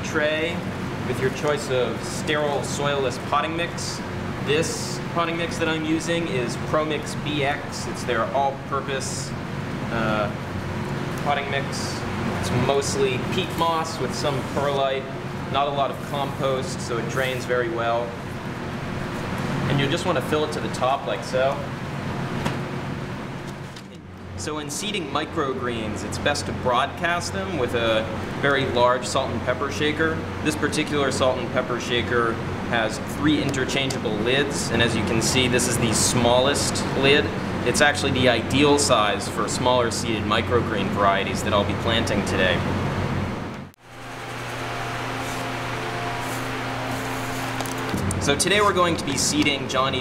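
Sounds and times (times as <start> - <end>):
steady low hum: 0.0 - 50.0
potting mix rustling and scraping: 44.1 - 49.7.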